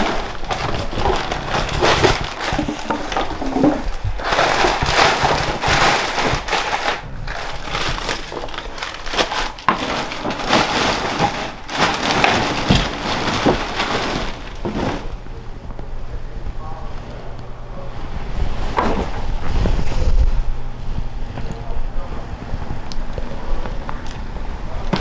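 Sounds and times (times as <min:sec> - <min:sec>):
plastic trash bag rustling: 0:00.0 - 0:15.4, 0:18.0 - 0:21.6, 0:24.0 - 0:25.0
trash crunching: 0:00.0 - 0:15.8, 0:24.8 - 0:25.0.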